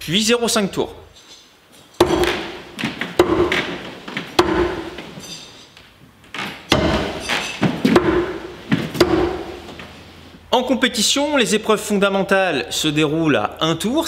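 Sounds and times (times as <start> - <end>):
knives striking wooden targets: 1.9 - 5.7, 6.4 - 9.7.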